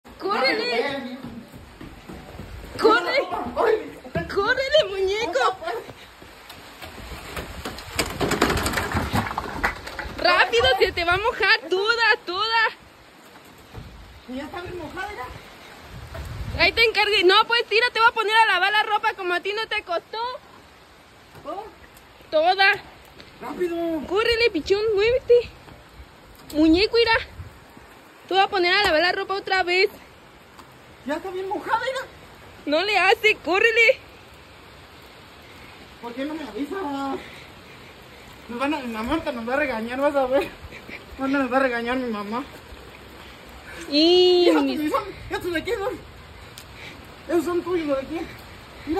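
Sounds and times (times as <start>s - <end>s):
rain falling: 0.0s - 48.9s.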